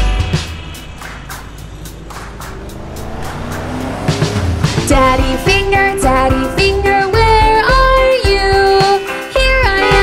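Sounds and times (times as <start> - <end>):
cartoon car engine revving: 0.0 - 8.8
thin background music: 0.0 - 10.0
person singing: 4.8 - 10.0.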